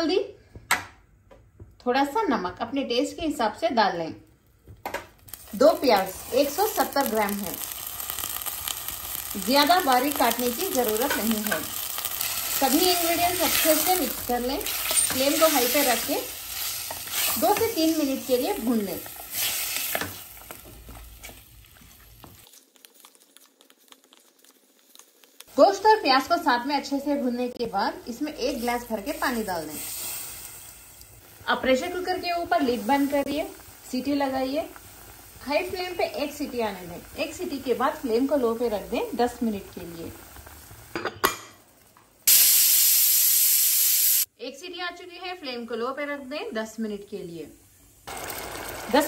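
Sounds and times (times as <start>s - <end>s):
meat sizzling in hot oil: 5.1s - 44.3s, 47.3s - 49.0s
pressure cooker whistle hissing: 42.3s - 44.3s.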